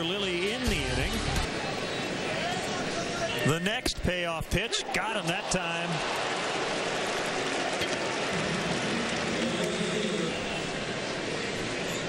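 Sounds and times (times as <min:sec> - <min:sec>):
crowd voices in stands: 0:00.0 - 0:12.0.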